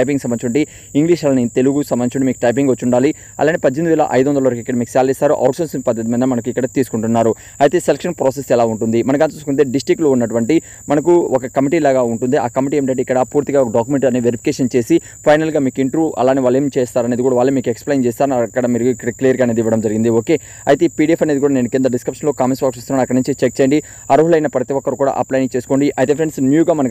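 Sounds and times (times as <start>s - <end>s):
high-pitched whine: 0.0s - 26.9s
man talking: 0.0s - 26.9s.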